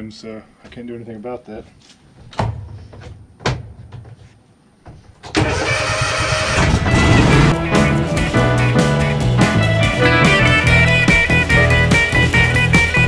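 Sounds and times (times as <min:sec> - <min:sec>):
loud guitar music: 0:06.5 - 0:13.0.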